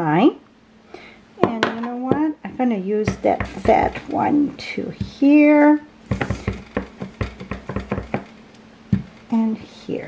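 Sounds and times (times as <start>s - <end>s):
stamp block knocking on ink pad: 3.1s - 4.0s, 6.1s - 8.3s.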